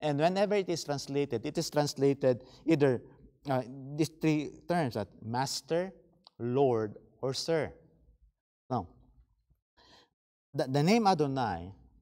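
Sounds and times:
man speaking: 0:00.0 - 0:07.8, 0:08.7 - 0:09.0, 0:10.6 - 0:11.8.

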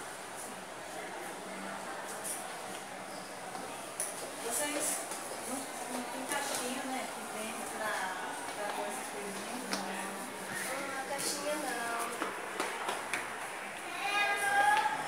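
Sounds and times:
quiet indistinct voices: 0:00.1 - 0:15.0.

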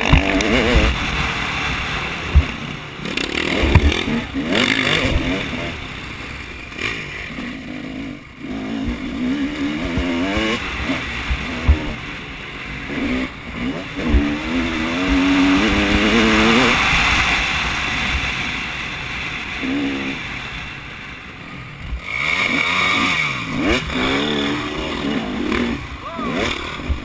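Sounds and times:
dirt bike engine revving: 0:00.0 - 0:27.0.

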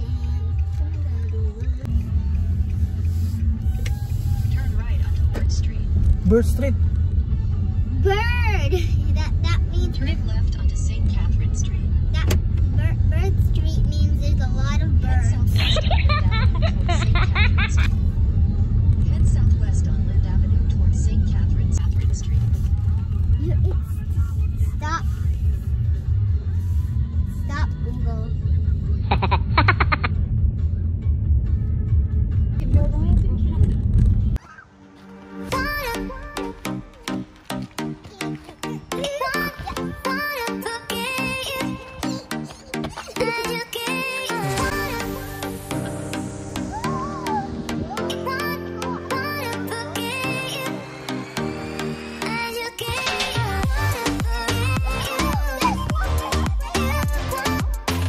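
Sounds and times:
background music: 0:00.0 - 0:58.0
car engine rumble and road noise: 0:00.0 - 0:58.0.

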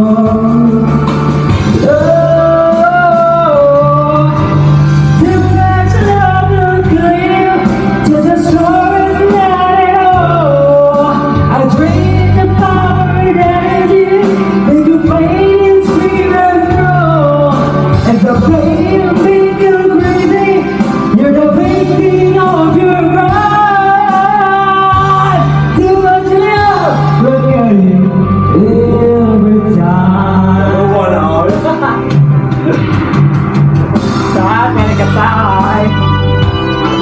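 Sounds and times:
man singing into a microphone: 0:00.0 - 0:32.2, 0:34.3 - 0:37.0
backing track with bass notes: 0:00.0 - 0:37.0.

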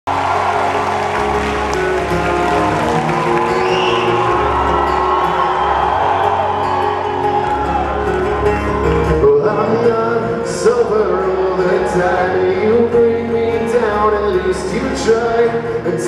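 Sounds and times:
crowd cheering and whooping: 0:00.1 - 0:09.8
acoustic guitar playing chords: 0:00.1 - 0:16.0.

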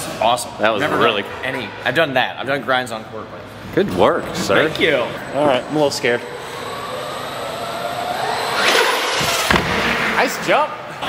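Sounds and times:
toy truck motor whining: 0:04.4 - 0:09.5
truck hitting something: 0:09.2 - 0:10.1.

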